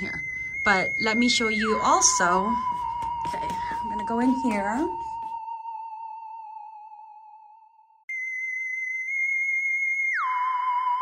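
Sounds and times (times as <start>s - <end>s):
eerie electronic tone: 0.0s - 11.0s.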